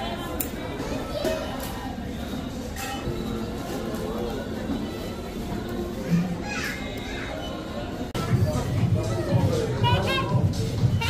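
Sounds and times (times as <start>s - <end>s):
faint background music: 0.0s - 11.0s
murmur of shoppers: 0.0s - 11.0s.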